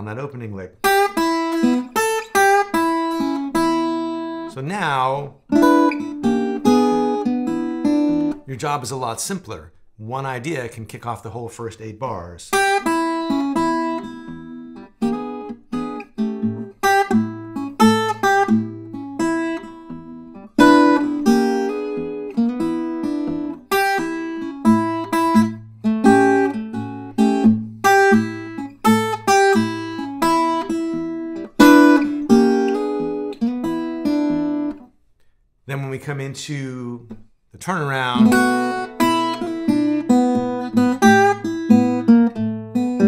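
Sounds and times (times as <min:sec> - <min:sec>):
acoustic blues guitar: 0:00.0 - 0:35.0, 0:35.7 - 0:43.0.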